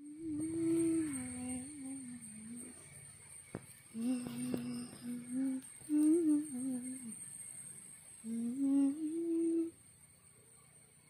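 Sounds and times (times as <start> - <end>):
person humming a tune: 0.0 - 2.8, 3.9 - 7.1, 8.2 - 9.8.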